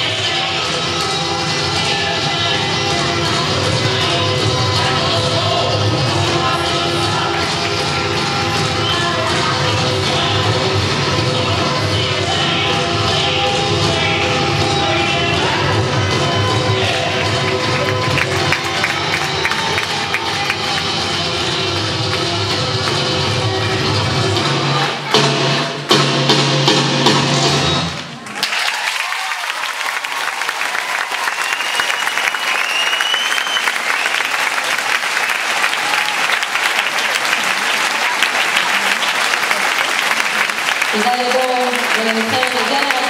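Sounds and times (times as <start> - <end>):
recorded accompaniment music: 0.0 - 28.3
audience applause and cheering: 6.4 - 11.2, 15.4 - 25.9, 27.5 - 43.0
rising whistles: 31.2 - 34.4.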